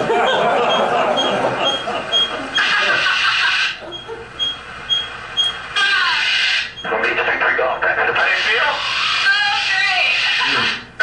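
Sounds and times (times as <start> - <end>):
short high beeps: 3.9 - 5.6
speech through speakers: 6.8 - 10.8.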